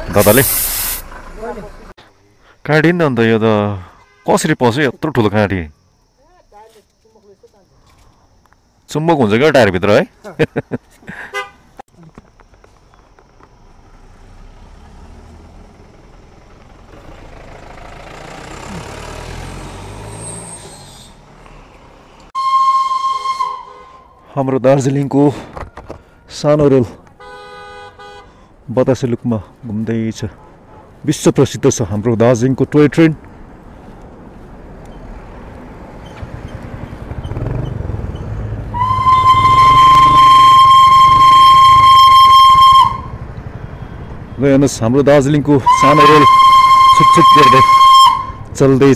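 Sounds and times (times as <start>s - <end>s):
hissing rush of noise: 0.1s - 1.1s
loud horn blast: 22.4s - 24.1s, 38.7s - 43.2s, 45.6s - 48.5s
steam locomotive whistle: 22.4s - 24.1s, 38.7s - 43.2s, 45.6s - 48.6s.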